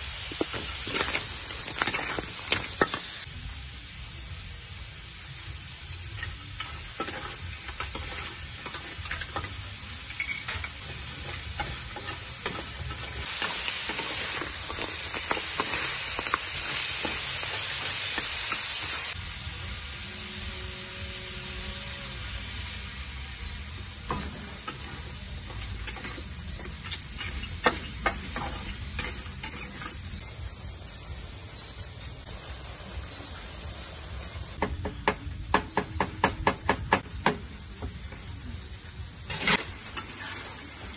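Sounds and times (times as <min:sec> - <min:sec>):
food sizzling in a wok: 0:00.0 - 0:40.9
metal spatula scraping a wok: 0:00.4 - 0:03.3, 0:06.1 - 0:19.2, 0:24.0 - 0:30.3, 0:39.2 - 0:40.9.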